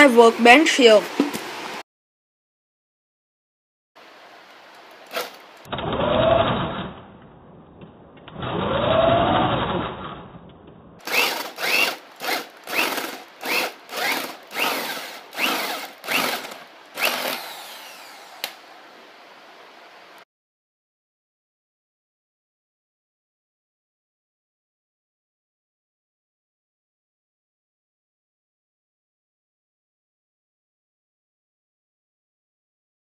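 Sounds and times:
power drill boring into wood: 5.1s - 5.4s, 11.0s - 18.6s.

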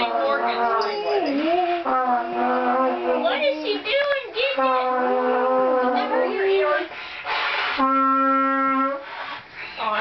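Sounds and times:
trumpet long held notes: 0.0s - 3.6s, 4.5s - 9.2s.

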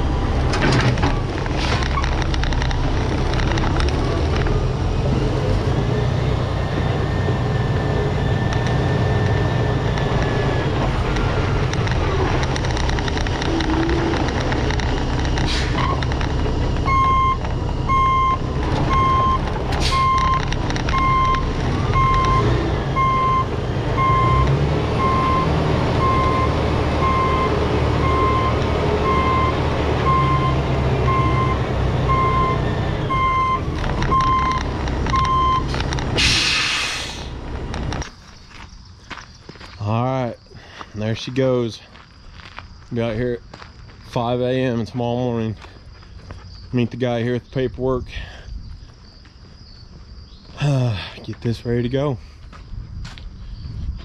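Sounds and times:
diesel truck engine running: 0.0s - 42.0s
backup alarm beeping: 13.5s - 35.8s
air brakes hiss: 36.2s - 37.4s.

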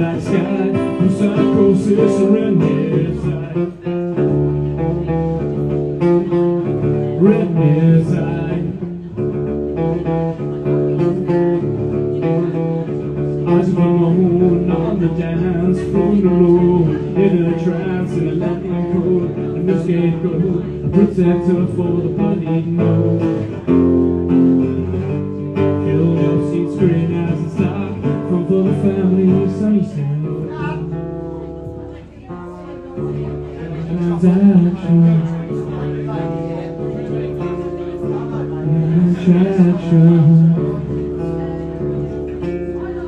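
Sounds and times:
acoustic guitar strumming: 0.0s - 43.0s
man singing: 0.0s - 43.0s.

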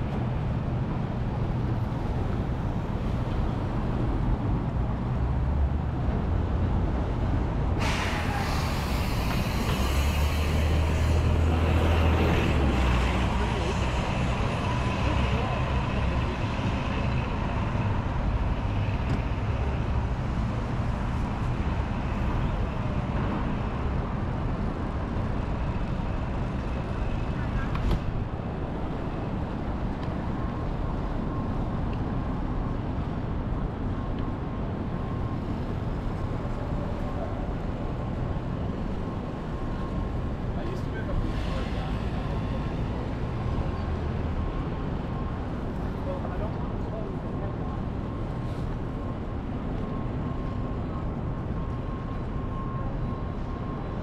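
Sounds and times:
bus engine rumbling: 0.0s - 54.0s
traffic noise: 0.0s - 54.0s.

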